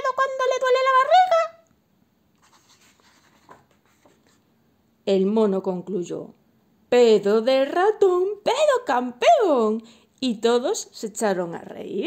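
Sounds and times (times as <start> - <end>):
paper page turning: 2.4 - 4.4.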